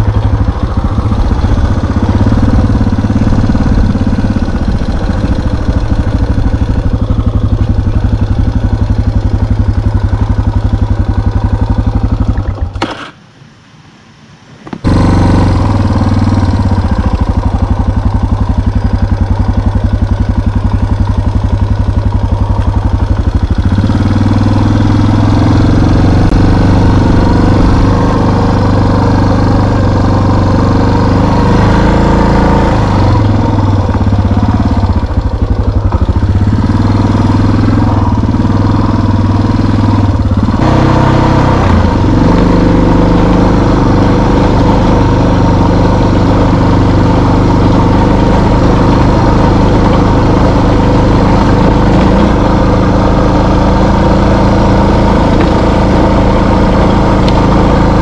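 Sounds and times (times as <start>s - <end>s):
off-road vehicle engine revving: 0.0s - 12.5s, 14.8s - 58.0s.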